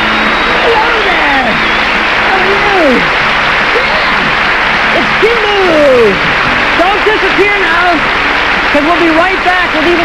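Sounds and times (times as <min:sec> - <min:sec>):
studio audience applauding: 0:00.0 - 0:10.0.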